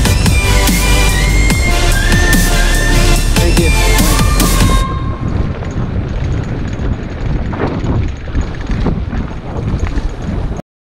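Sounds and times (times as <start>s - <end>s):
bike rattling on trail: 1.2s - 10.6s
wind buffeting microphone: 3.2s - 10.6s.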